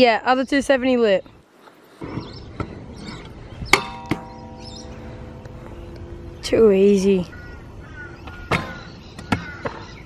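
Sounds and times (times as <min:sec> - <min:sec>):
scooter hitting metal rail: 0:03.7 - 0:06.1, 0:08.4 - 0:09.8
rail ringing: 0:03.7 - 0:07.5.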